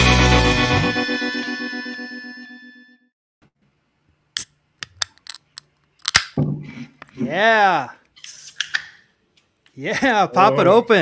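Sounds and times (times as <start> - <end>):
sharp clicks and knocks: 4.8 - 6.4
short hiss: 8.2 - 8.8.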